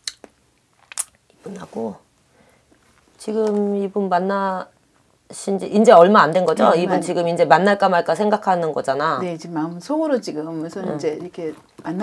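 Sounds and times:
woman's mouth clicking: 0.0 - 0.3.

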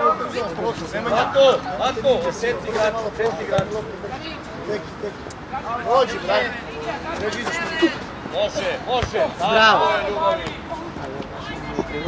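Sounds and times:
players and coaches calling out: 0.0 - 12.0.

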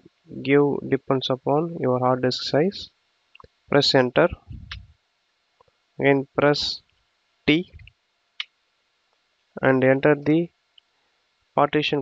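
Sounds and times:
man speaking: 0.3 - 2.9, 3.7 - 4.8, 6.0 - 6.8, 7.5 - 7.8, 9.6 - 10.5, 11.6 - 12.0.

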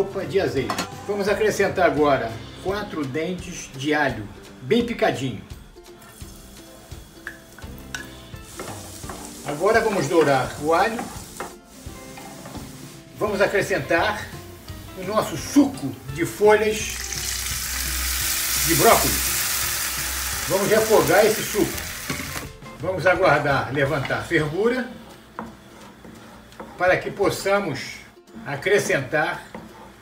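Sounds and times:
garlic sizzling in oil: 3.8 - 28.1
wooden spoon stirring: 8.5 - 15.9, 25.0 - 27.6, 29.5 - 30.0.

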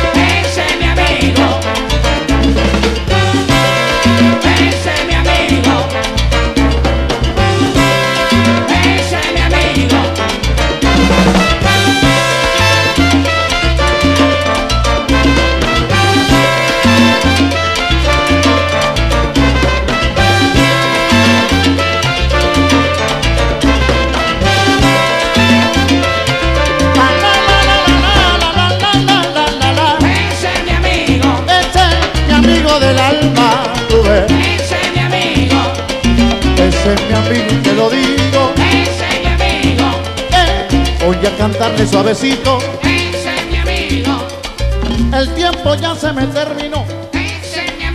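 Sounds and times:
bass line: 0.0 - 47.9
salsa band playing: 0.0 - 47.9.

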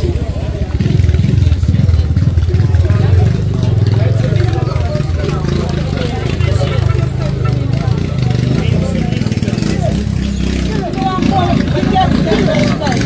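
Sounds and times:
indistinct voices: 0.0 - 13.0.

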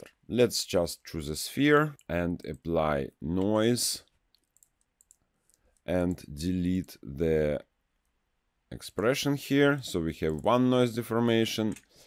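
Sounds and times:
man talking: 0.0 - 4.1, 5.9 - 7.7, 8.7 - 11.8.

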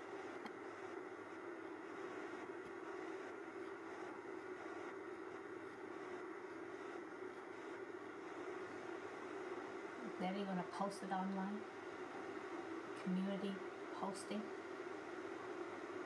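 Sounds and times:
faint background hiss: 0.0 - 16.0
steady low hum: 0.0 - 16.0.

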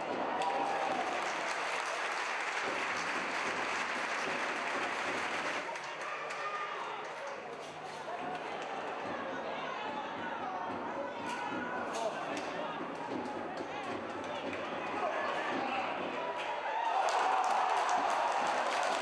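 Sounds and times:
stadium applause: 0.0 - 9.7, 13.2 - 19.0
stadium background noise: 0.0 - 19.0.

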